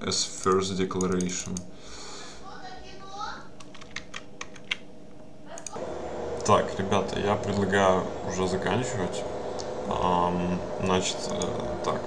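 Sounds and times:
typing on computer keyboard: 3.6 - 4.8.

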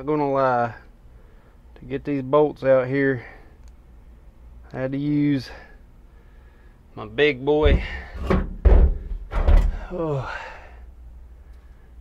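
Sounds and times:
heavy thuds on steel floor: 7.6 - 9.8.

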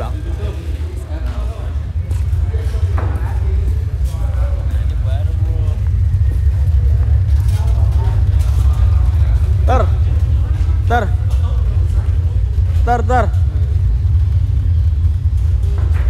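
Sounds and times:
deep steady rumble: 0.0 - 16.0.

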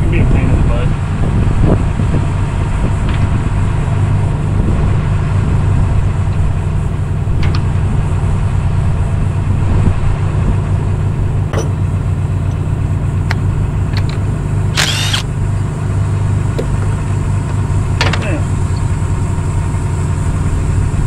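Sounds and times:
truck engine idling: 0.0 - 21.0.

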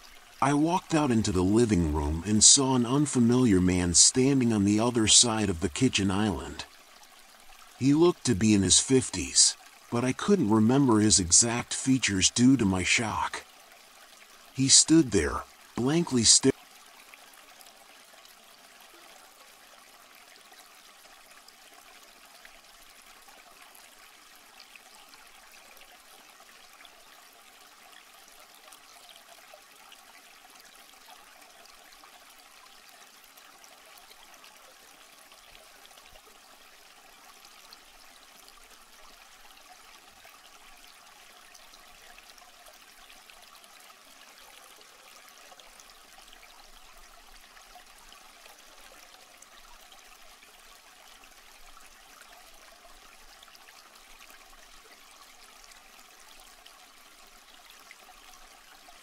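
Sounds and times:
faint water-like hiss: 0.0 - 16.6.

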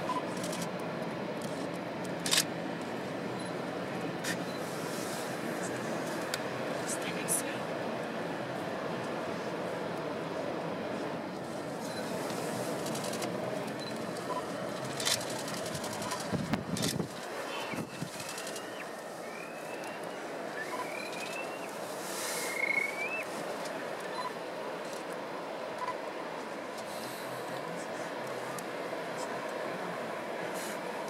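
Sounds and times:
wind: 0.0 - 31.0
high bird calls: 17.5 - 21.8, 22.4 - 23.4.

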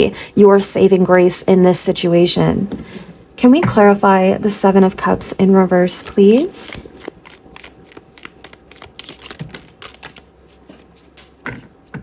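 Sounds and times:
cards being shuffled: 6.4 - 12.0.

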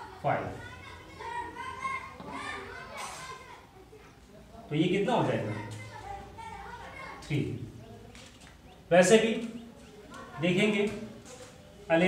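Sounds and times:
faint children's voices: 0.0 - 12.0.

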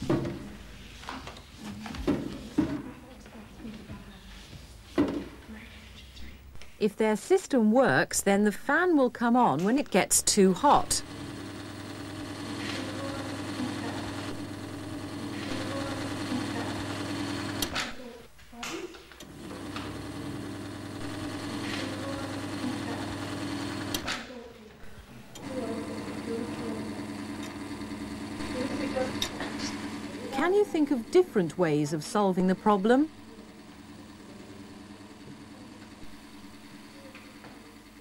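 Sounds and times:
small electric fan motor humming: 10.2 - 18.4, 19.0 - 24.3, 25.2 - 38.0.

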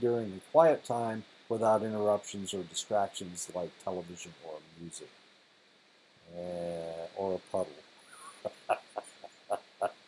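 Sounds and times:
man chuckling quietly: 8.1 - 10.0.

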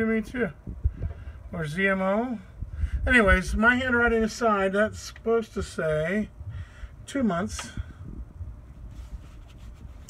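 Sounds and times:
phone microphone handling rumble: 0.6 - 1.5, 7.3 - 10.0.

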